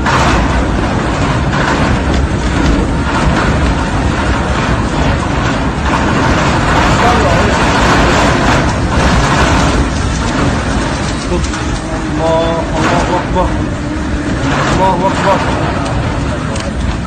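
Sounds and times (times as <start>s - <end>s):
strong wind buffeting microphone: 0.0s - 17.0s.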